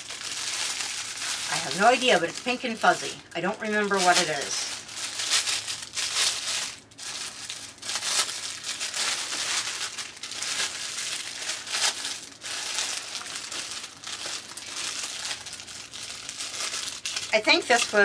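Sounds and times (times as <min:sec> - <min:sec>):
plastic bag crinkling: 0:00.0 - 0:18.0.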